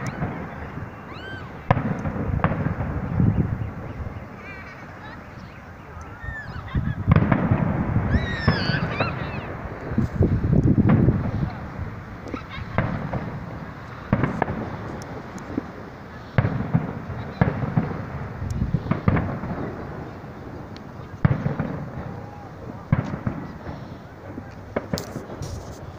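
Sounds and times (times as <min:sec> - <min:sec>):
firework shells bursting: 0:00.0 - 0:05.2, 0:06.0 - 0:25.9.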